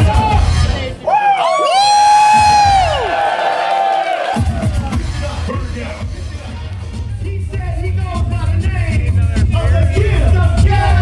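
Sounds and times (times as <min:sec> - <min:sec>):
live hip-hop music: 0:00.0 - 0:03.4, 0:04.2 - 0:11.0
crowd cheering and whooping: 0:01.0 - 0:05.0.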